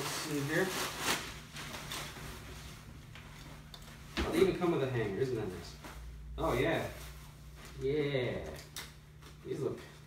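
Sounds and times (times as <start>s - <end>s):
plastic bag crinkling: 0.0s - 2.5s.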